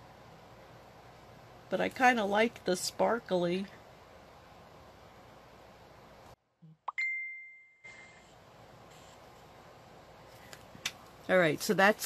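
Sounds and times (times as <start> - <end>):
bright ding: 6.9 - 8.2.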